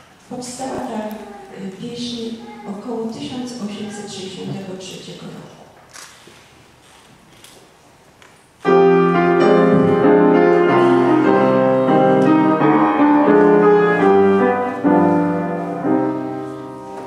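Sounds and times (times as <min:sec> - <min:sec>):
piano chords: 0:08.6 - 0:17.0.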